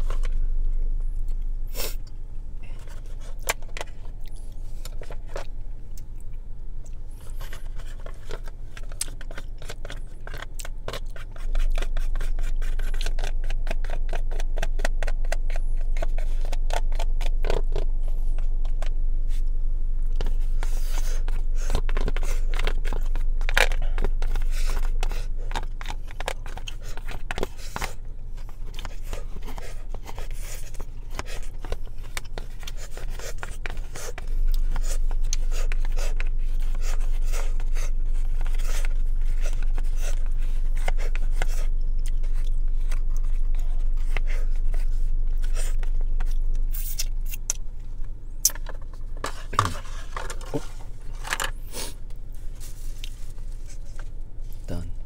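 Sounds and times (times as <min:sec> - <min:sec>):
low hum: 0:00.0 - 0:55.0
chopsticks scraping plastic tray: 0:48.7 - 0:52.0.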